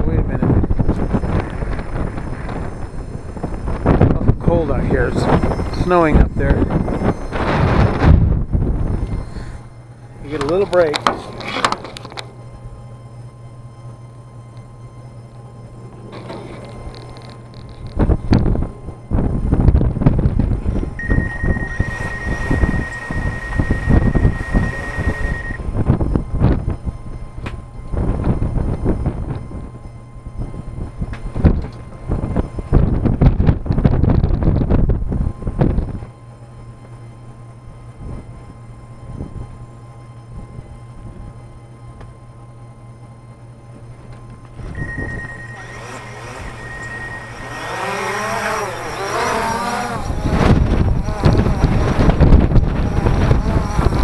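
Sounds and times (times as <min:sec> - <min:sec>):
gusty wind buffeting microphone: 0:00.0 - 0:13.4, 0:16.0 - 0:41.6, 0:44.4 - 0:54.0
steady high tone: 0:00.0 - 0:34.0, 0:44.6 - 0:50.8
drone motors humming: 0:00.0 - 0:54.0.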